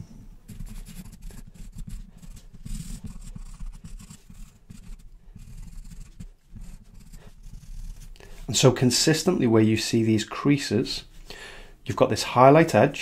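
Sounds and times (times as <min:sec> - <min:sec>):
charcoal pencil scratching on paper: 0:00.5 - 0:08.2.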